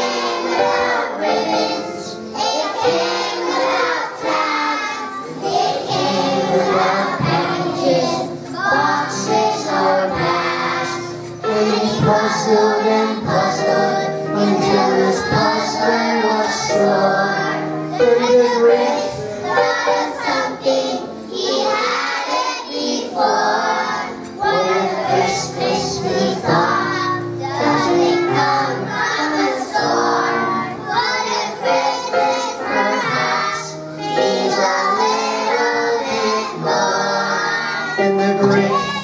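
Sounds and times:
backing music: 0.0 - 39.0
children's choir singing: 0.0 - 39.0.

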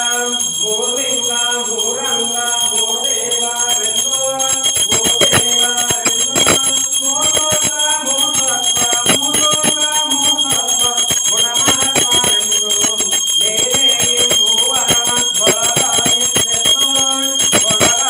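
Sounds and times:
brass hand bell ringing: 0.0 - 18.0.

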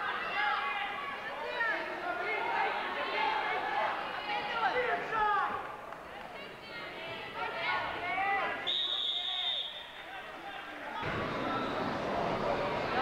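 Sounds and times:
crowd voices echoing: 0.0 - 13.0.

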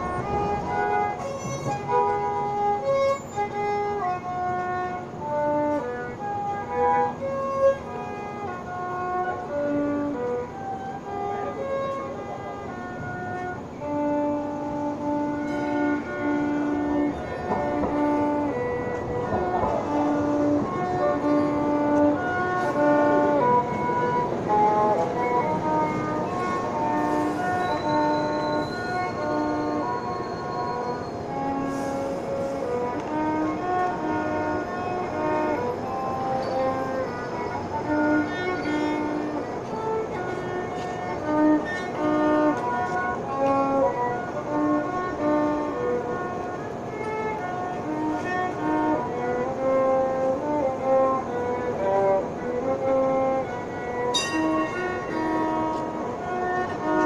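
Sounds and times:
lower sustained notes: 0.0 - 57.0
violin slow melody: 0.0 - 57.0.

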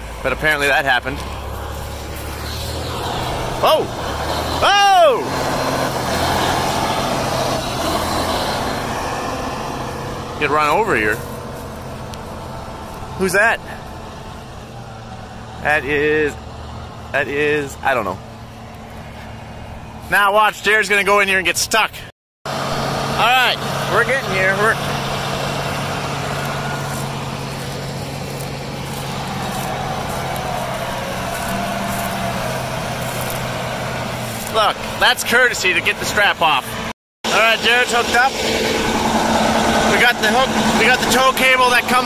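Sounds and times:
tractor diesel engine rumbling: 0.0 - 42.0.

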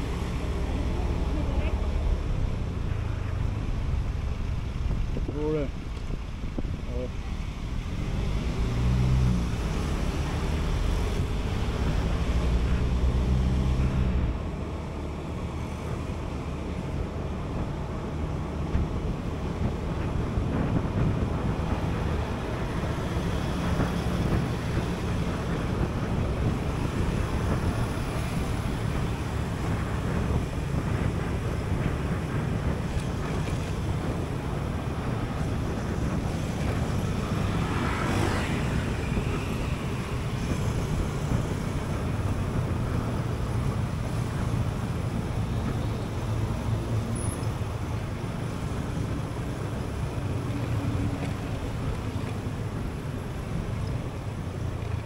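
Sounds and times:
road traffic: 0.0 - 55.0
wind over microphone: 0.0 - 55.0.

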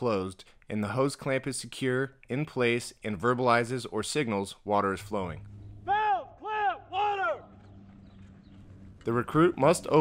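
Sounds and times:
faint low hum: 4.8 - 10.0
person shouting a call: 5.8 - 7.5.

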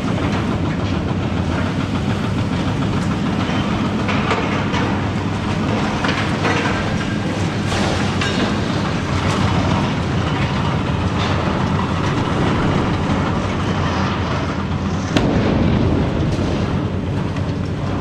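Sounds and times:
excavator engine running: 0.0 - 18.0.

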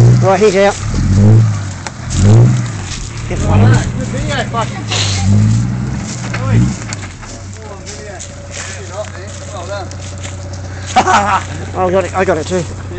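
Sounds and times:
diesel engine idling: 0.0 - 12.9
people talking: 0.2 - 0.8, 3.2 - 5.5, 6.3 - 10.0, 10.9 - 12.9.

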